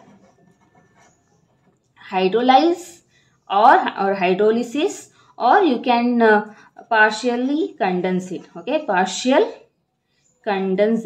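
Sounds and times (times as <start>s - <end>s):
pen scratching on paper: 0.0s - 1.5s.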